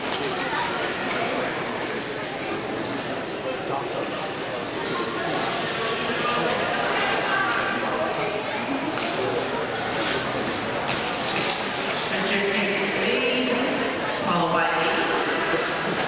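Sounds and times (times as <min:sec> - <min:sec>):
spectators chattering and calling: 0:00.0 - 0:16.0.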